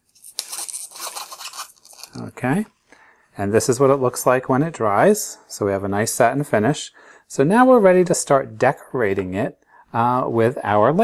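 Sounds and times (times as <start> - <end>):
scratchy rustling and scraping: 0.0 - 2.3.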